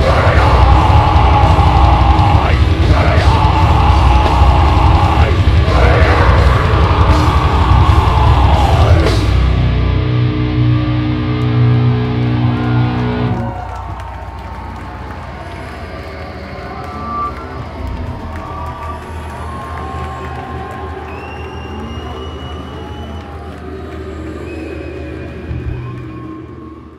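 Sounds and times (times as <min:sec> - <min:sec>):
distorted guitar chord: 0:00.0 - 0:13.5
crowd cheering and shouting: 0:00.0 - 0:26.9.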